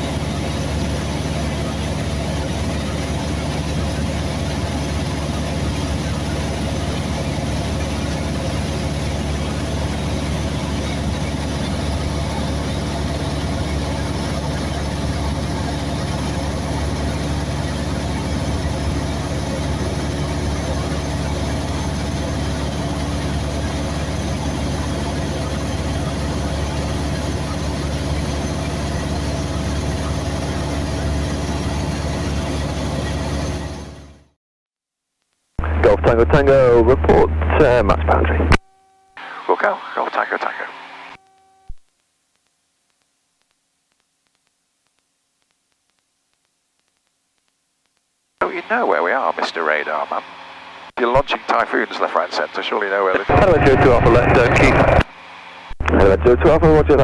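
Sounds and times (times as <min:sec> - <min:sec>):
propeller aircraft engine droning: 0:00.0 - 0:34.3, 0:35.6 - 0:38.6, 0:48.4 - 0:57.0.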